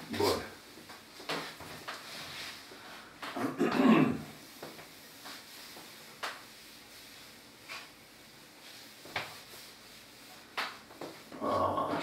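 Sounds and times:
faint room hiss: 0.0 - 12.0
chalk tapping on blackboard: 4.4 - 6.6.

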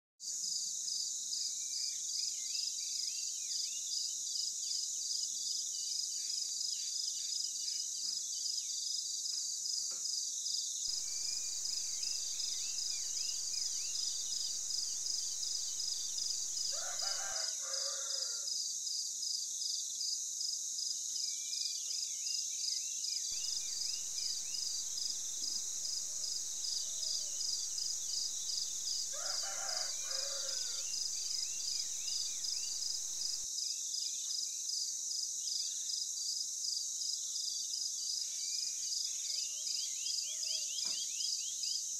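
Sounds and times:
small birds chirping: 10.9 - 17.4, 23.4 - 33.4
insect chorus pulsing trill: 10.9 - 18.1, 23.4 - 33.5.

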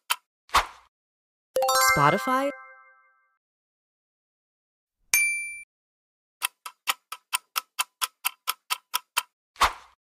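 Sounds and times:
clock ticking: 6.4 - 9.3.

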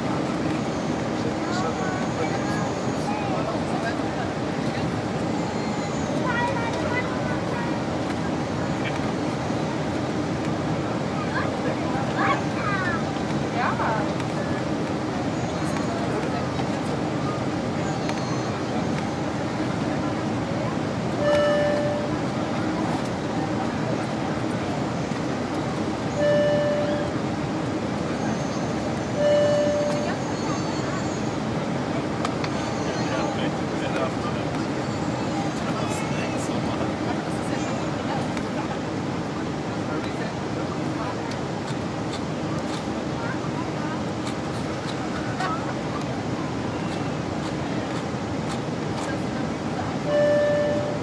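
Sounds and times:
airplane cabin roar: 0.0 - 51.0
faint passenger voices: 0.0 - 51.0.

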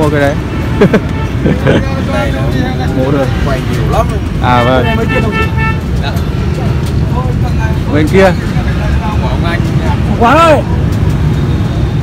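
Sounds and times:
road traffic rumble: 0.0 - 12.0
vehicle horn toot: 4.6 - 5.9.

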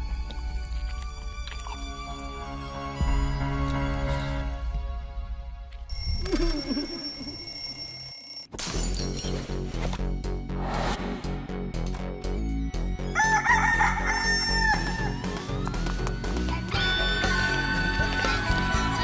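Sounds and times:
cartoon music with steady beat: 9.6 - 19.0
rooster crowing: 13.2 - 15.2.

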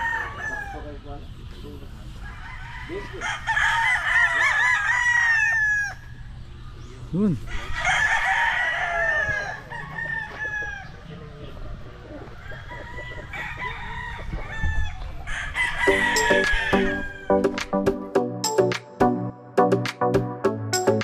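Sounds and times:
roosters crowing: 0.0 - 1.3, 2.0 - 6.8, 7.4 - 18.1
background music: 15.9 - 21.0.

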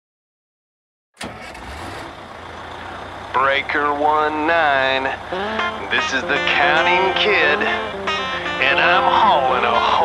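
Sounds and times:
truck engine idling: 1.2 - 10.0.

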